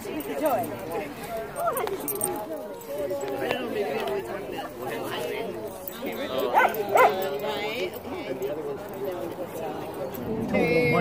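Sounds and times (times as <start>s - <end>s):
background chatter: 0.0s - 11.0s
dog barking high yips: 6.6s - 7.2s.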